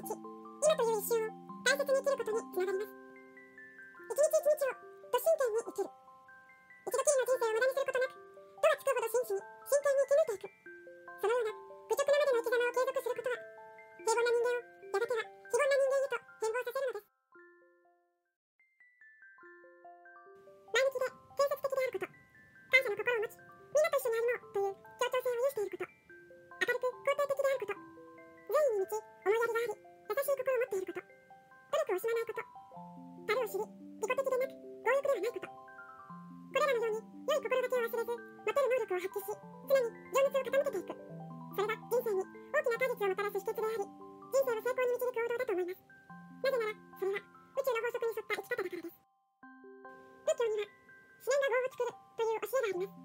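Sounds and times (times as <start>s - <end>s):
person narrating: 0.0s - 3.1s, 4.0s - 6.0s, 6.8s - 17.1s, 20.7s - 26.0s, 26.6s - 27.8s, 28.4s - 31.1s, 31.7s - 32.6s, 33.2s - 35.6s, 36.4s - 49.0s, 50.2s - 53.0s
person reading aloud: 0.0s - 3.1s, 4.0s - 6.0s, 6.8s - 17.1s, 20.7s - 31.1s, 31.7s - 32.6s, 33.2s - 35.6s, 36.4s - 49.0s, 50.2s - 53.0s
music box melody: 0.0s - 53.0s.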